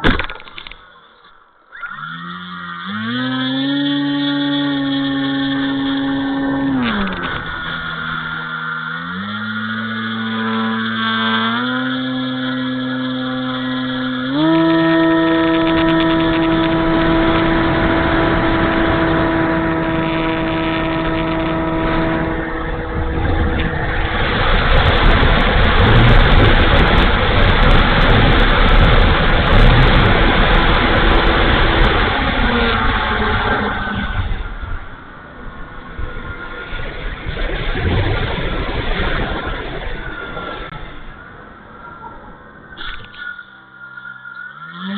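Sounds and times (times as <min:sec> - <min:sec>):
model plane electric motor whine: 0:01.7 - 0:34.9, 0:42.8 - 0:44.9
rushing airflow noise: 0:03.1 - 0:44.9.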